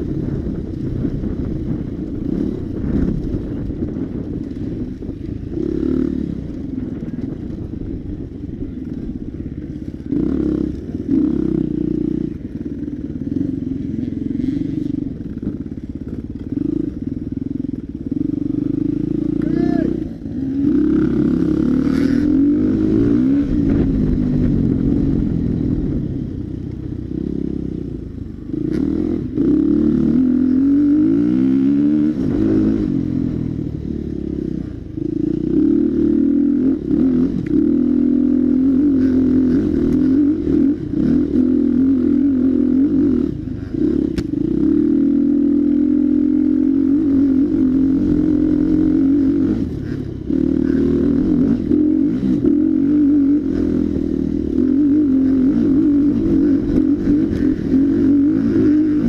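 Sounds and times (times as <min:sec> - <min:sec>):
dirt bike engine revving: 0:08.6 - 0:26.0, 0:28.4 - 0:59.0.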